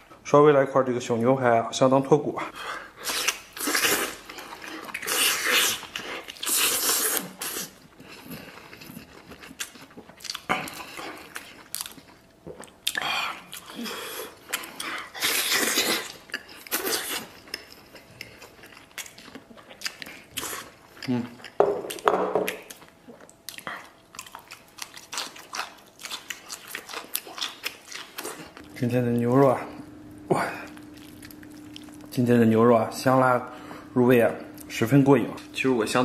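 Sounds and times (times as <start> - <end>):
person chewing with wet smacking: 3.0 - 28.8, 30.5 - 32.2.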